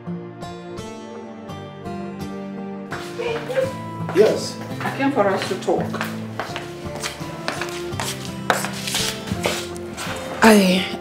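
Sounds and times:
low sustained background music: 0:00.0 - 0:11.0
sandalled footsteps on tiled floor: 0:02.9 - 0:10.8.

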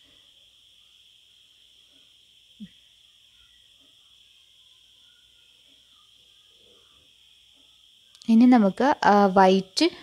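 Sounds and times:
faint high-pitched drone: 0:00.0 - 0:10.0.

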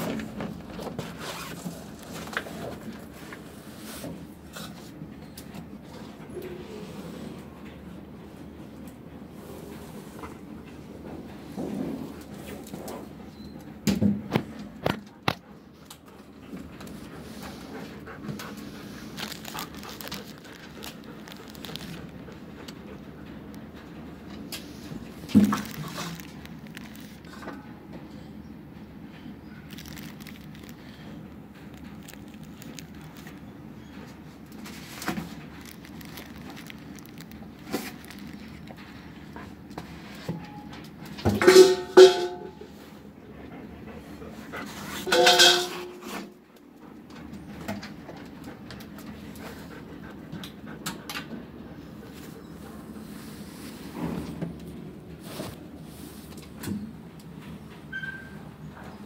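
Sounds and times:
low background hum: 0:00.0 - 0:59.0.

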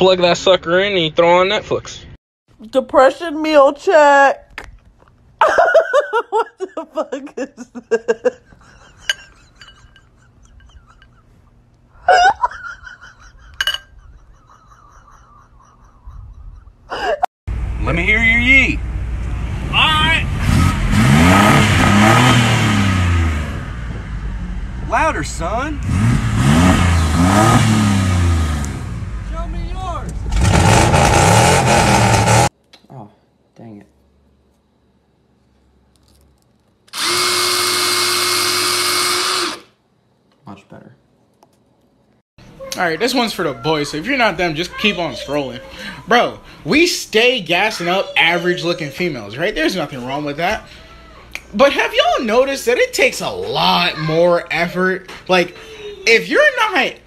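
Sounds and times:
electric pencil sharpener whining: 0:36.9 - 0:39.7.

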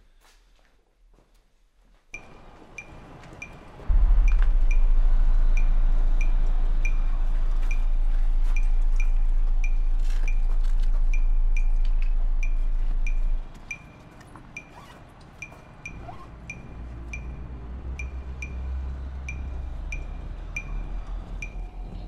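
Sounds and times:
regular metallic ticking: 0:02.2 - 0:22.0
deep sustained bass note: 0:03.9 - 0:13.4.

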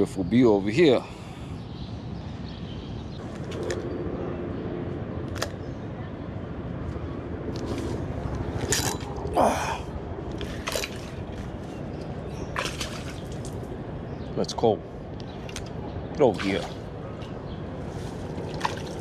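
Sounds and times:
steady rumble: 0:02.2 - 0:19.0.

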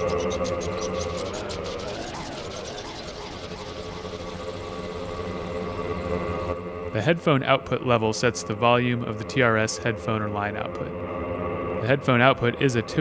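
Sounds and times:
fast high ticking: 0:00.0 - 0:06.6
echoes sweeping in pitch: 0:00.0 - 0:13.0
synthesizer drone: 0:00.0 - 0:13.0.

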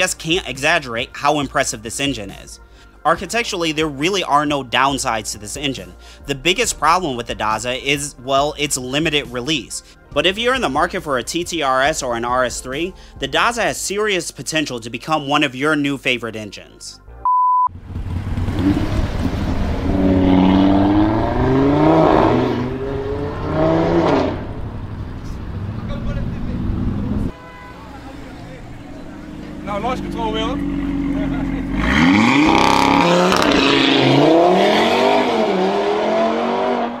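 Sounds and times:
short beep: 0:17.2 - 0:17.7
car engines revving in tunnel: 0:17.8 - 0:26.0, 0:30.6 - 0:37.0.

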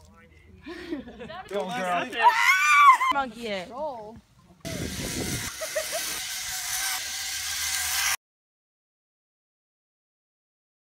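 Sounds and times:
outdoor rushing hiss: 0:04.6 - 0:08.2.

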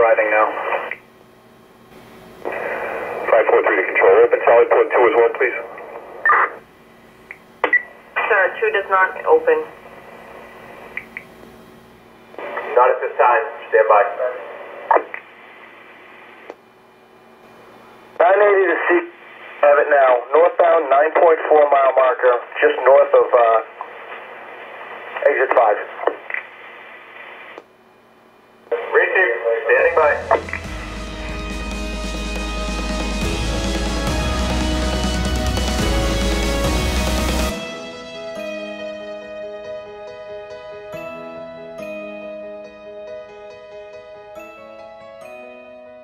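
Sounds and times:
radio channel hiss: 0:00.0 - 0:01.2, 0:01.8 - 0:06.7, 0:07.3 - 0:11.4, 0:12.3 - 0:16.6, 0:17.5 - 0:27.7, 0:28.6 - 0:31.6
police radio voice: 0:28.7 - 0:30.4
music: 0:29.7 - 0:46.0.

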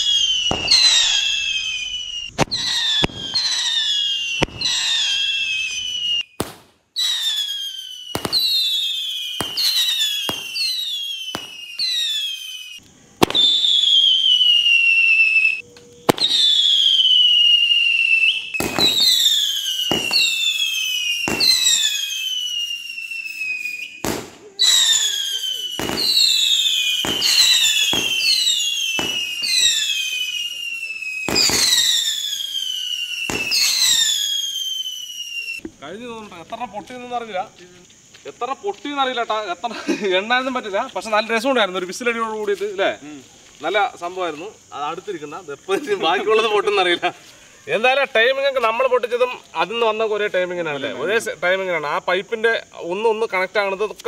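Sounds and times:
firework bangs and cracks: 0:00.0 - 0:39.5
rockets whistling: 0:00.0 - 0:54.0.

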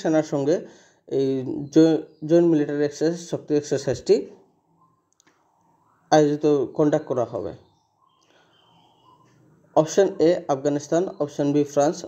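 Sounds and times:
faint small clicks: 0:05.1 - 0:05.4.

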